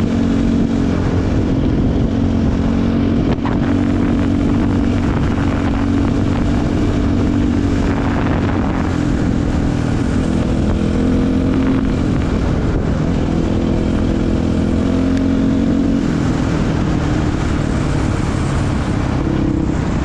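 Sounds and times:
dirt bike engine running: 0:00.0 - 0:20.0.

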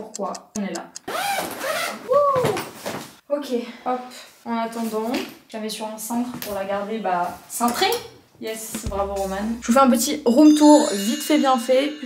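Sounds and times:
suitcase zipper rasping: 0:01.1 - 0:02.0.

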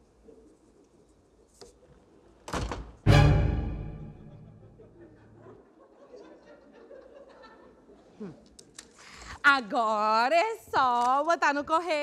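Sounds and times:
musical sting chord: 0:03.1 - 0:04.9.

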